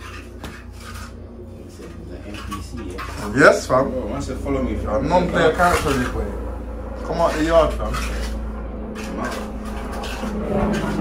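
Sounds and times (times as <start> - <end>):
trowel scraping wet compound: 0.0 - 3.8, 7.0 - 11.0
steady low hum: 0.0 - 11.0.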